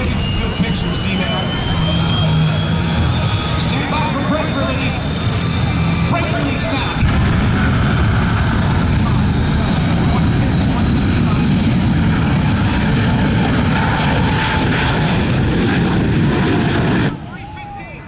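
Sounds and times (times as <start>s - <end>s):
jet engines roaring: 0.0s - 18.0s.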